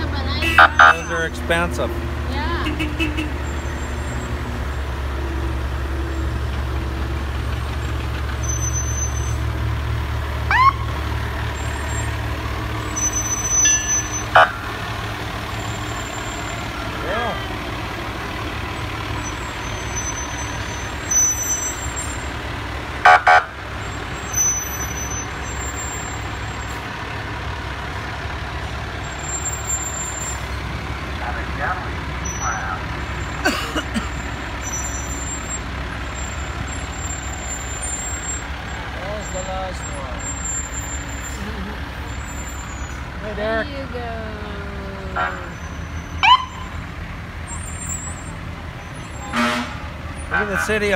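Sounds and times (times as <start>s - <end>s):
fire truck engines rumbling: 0.0s - 50.9s.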